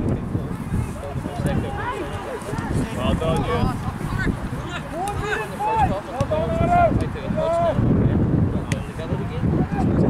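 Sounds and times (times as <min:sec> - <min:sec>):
wind on microphone: 0:00.0 - 0:10.0
players shouting: 0:00.8 - 0:07.8.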